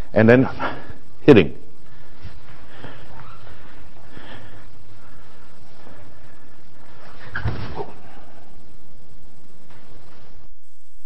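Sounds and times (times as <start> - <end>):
faint breathing: 0.0 - 1.2, 1.8 - 9.0
steady background hiss: 0.0 - 11.0.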